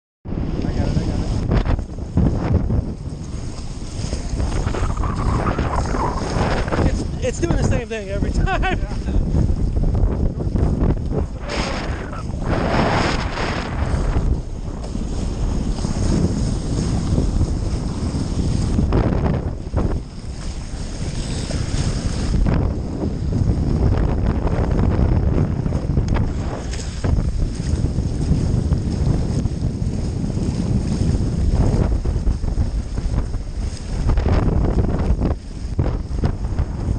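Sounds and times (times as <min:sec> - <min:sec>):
wind rumbling on microphone: 0:00.2 - 0:36.9
water rushing along hulls: 0:00.3 - 0:36.9.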